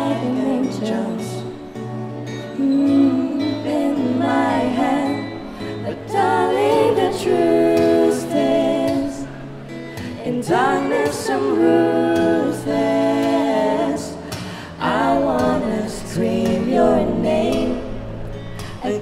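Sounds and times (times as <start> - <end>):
acoustic guitar: 0.0 - 19.0
woman singing slow song: 0.0 - 19.0.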